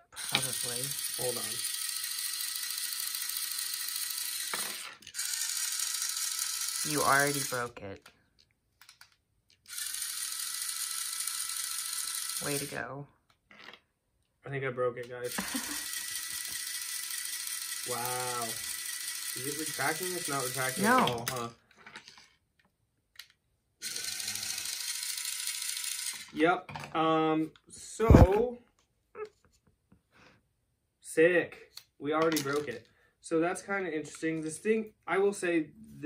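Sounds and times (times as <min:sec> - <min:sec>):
small motor whirring: 0:00.0 - 0:07.7, 0:09.6 - 0:12.8, 0:15.2 - 0:21.5, 0:23.8 - 0:26.4
toy mechanism click: 0:00.1 - 0:08.1, 0:08.8 - 0:12.8, 0:15.0 - 0:21.5, 0:23.2 - 0:26.4
mechanical whirr with gear rattle: 0:00.2 - 0:07.6.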